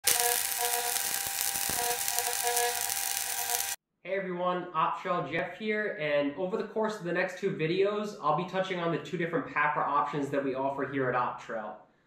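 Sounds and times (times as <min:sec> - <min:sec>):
small motor hissing and whining: 0:00.0 - 0:03.8.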